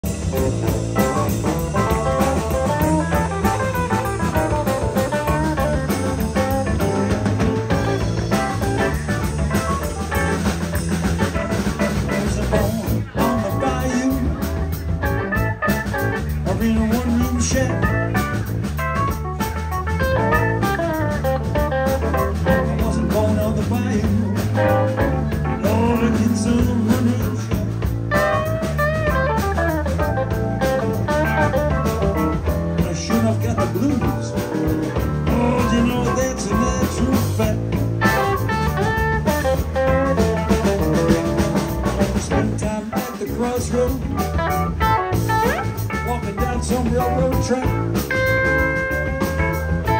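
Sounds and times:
electric guitar lines: 0:00.0 - 0:42.5, 0:44.0 - 0:46.6
bass guitar: 0:00.0 - 0:49.9
drum kit: 0:00.0 - 0:49.9
keyboard: 0:00.0 - 0:49.9.

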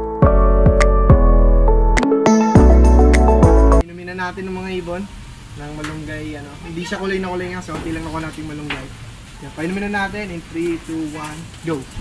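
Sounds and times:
man speaking: 0:03.8 - 0:11.9
background hiss: 0:03.8 - 0:12.0.

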